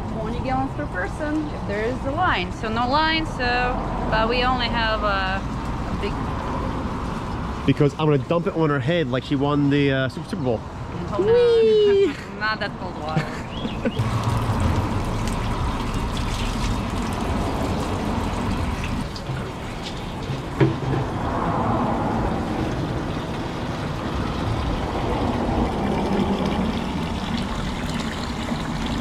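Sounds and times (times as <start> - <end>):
water pouring into plastic cooler: 14.0 - 21.2, 22.6 - 29.0.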